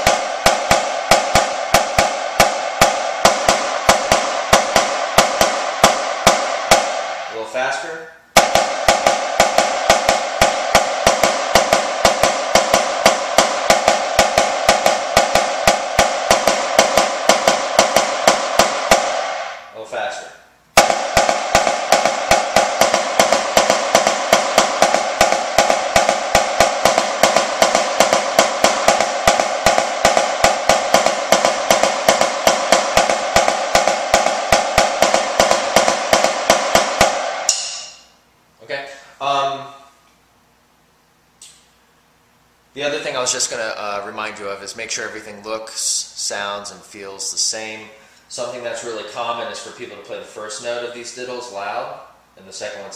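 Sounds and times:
snare drum double strokes: 0:00.0 - 0:07.6, 0:08.4 - 0:19.8, 0:20.8 - 0:38.2.

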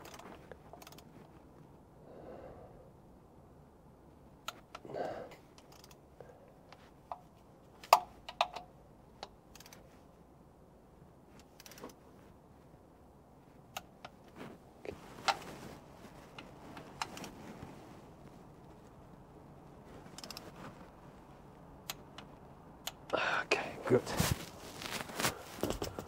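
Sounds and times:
wrench clicking and clinking: 0:05.6 - 0:06.0.

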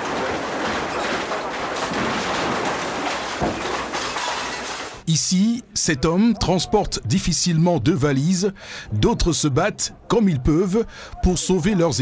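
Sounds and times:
masonry and metal crunching: 0:00.0 - 0:12.0.

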